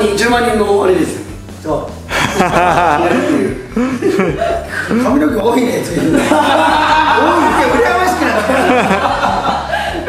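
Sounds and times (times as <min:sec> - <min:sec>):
chuckling laughter: 0:02.2 - 0:04.8, 0:06.1 - 0:07.7, 0:08.3 - 0:10.0
man talking: 0:04.9 - 0:06.2, 0:07.2 - 0:08.6.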